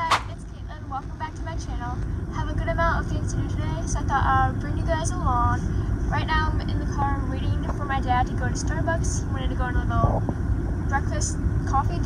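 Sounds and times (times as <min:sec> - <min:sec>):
girl talking: 0:00.0 - 0:10.2, 0:10.9 - 0:12.0
idling car rumble: 0:00.0 - 0:12.0.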